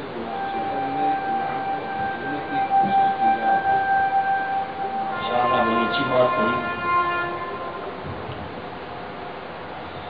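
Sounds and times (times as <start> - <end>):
microphone feedback ringing: 0.0 - 7.9.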